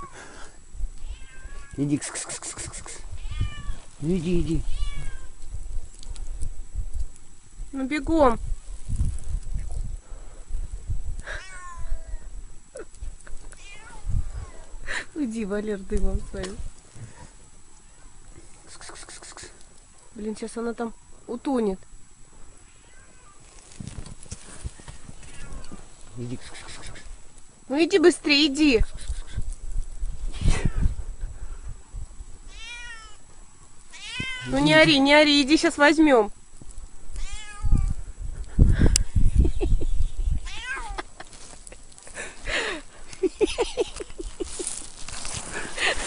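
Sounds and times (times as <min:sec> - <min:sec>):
cat meowing: 0:01.0 - 0:01.8, 0:03.2 - 0:03.9, 0:04.6 - 0:05.4, 0:11.3 - 0:12.3, 0:13.6 - 0:14.7, 0:22.7 - 0:23.5, 0:25.2 - 0:25.8, 0:32.5 - 0:33.2, 0:33.9 - 0:34.8, 0:37.2 - 0:38.0, 0:40.4 - 0:41.0.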